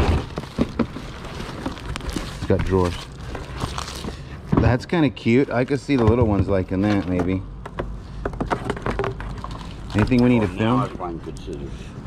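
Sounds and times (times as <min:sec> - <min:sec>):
items knocking inside cardboard box: 0:00.0 - 0:03.0, 0:05.9 - 0:10.2.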